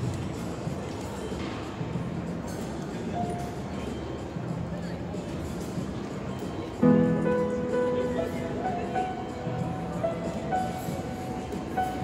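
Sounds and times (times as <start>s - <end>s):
piano slow melody: 6.8s - 12.0s.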